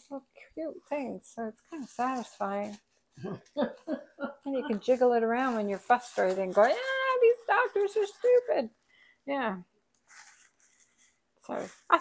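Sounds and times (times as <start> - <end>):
person speaking: 0.0 - 8.7
sequins rustling in plastic: 4.8 - 8.7, 10.0 - 12.0.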